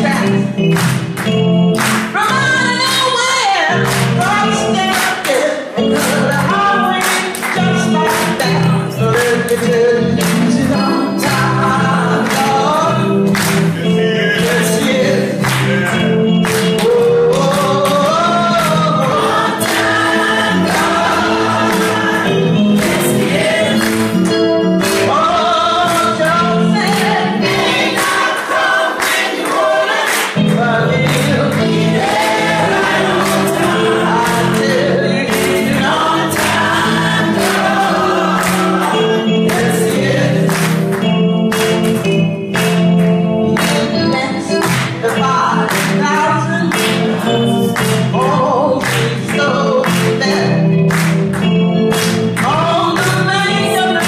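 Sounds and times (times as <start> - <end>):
church choir singing gospel: 0.0 - 54.0.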